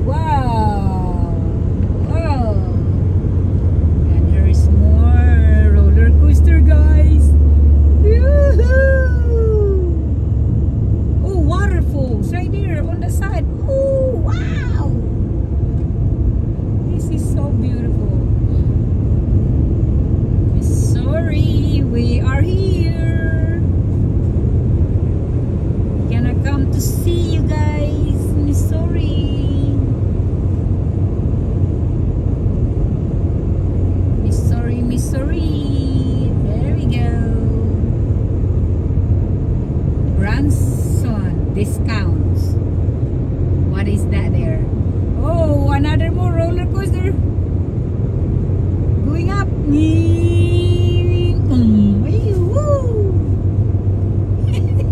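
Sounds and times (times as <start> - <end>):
car road and engine rumble: 0.0 - 54.9.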